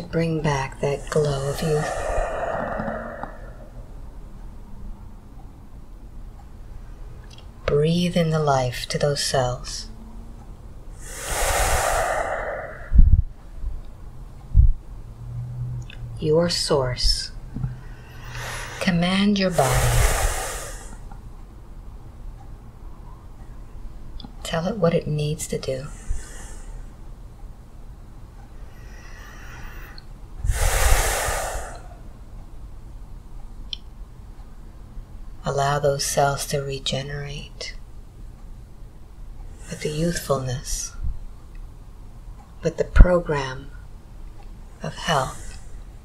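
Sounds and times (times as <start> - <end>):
man breathing in deeply: 1.0 - 4.0, 11.0 - 13.1, 19.6 - 21.0, 25.9 - 26.9, 28.7 - 32.1.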